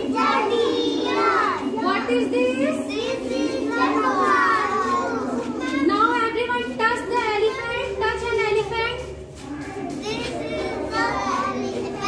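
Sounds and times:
toddlers chattering: 0.0 - 12.0.

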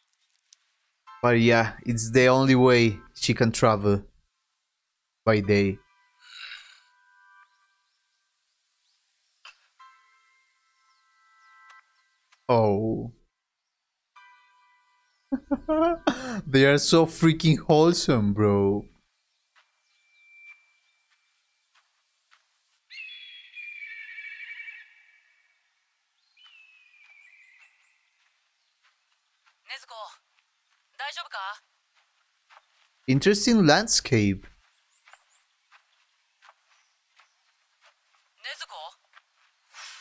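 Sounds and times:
faint steady tone: 4.1 - 16.6.

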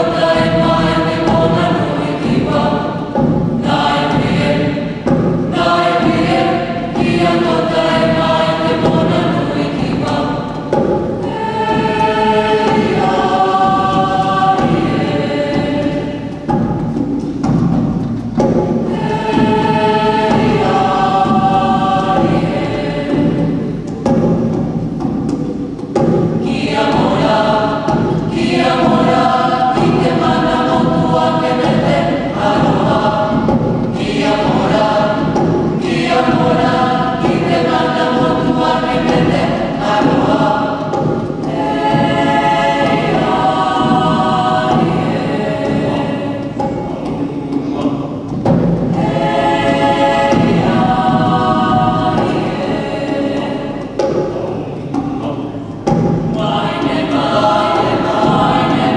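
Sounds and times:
mixed choir singing a cappella: 0.0 - 58.9.

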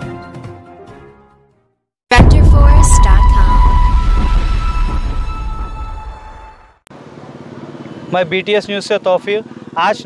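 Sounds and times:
news intro jingle: 2.1 - 6.7
roadside traffic: 6.9 - 10.0.

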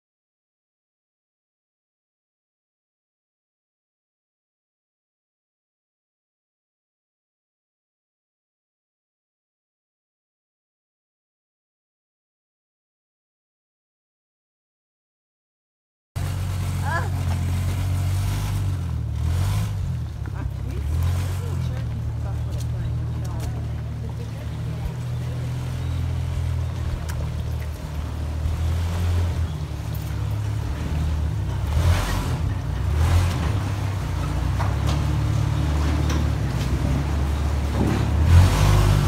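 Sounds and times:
vehicle engine deep rumble: 16.2 - 39.0.

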